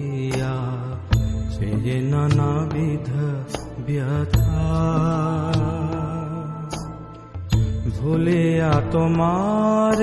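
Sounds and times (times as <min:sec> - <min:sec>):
instrumental accompaniment: 0:00.0 - 0:10.0
person singing: 0:00.0 - 0:10.0.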